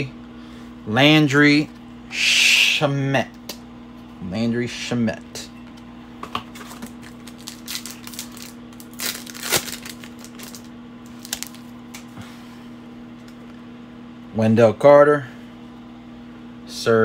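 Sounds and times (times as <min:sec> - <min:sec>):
steady low hum: 0:00.0 - 0:17.0
foil card pack crinkling: 0:06.5 - 0:12.0.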